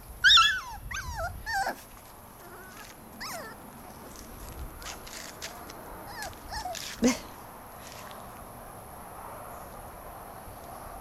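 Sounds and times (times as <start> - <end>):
puppy whimpering and yipping: 0.2 - 3.8, 6.0 - 7.1.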